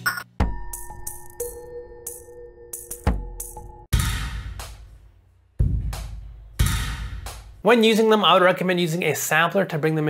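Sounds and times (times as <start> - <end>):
hard drum hits: 5.6 - 7.6.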